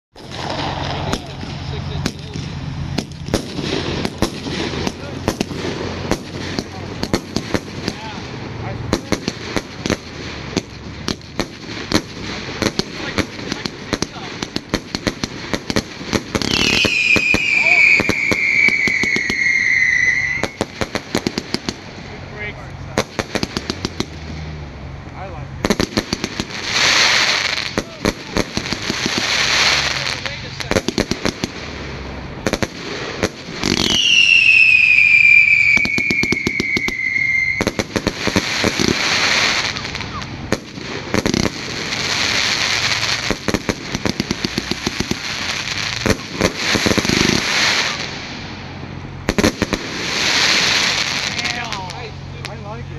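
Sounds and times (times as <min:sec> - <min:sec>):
fireworks bangs and crackling: 0:00.1 - 0:52.9
whistling firework: 0:00.2 - 0:08.3, 0:08.9 - 0:21.9, 0:25.7 - 0:31.9, 0:32.5 - 0:48.5, 0:49.3 - 0:52.1
rushing hiss of fireworks: 0:00.2 - 0:52.9.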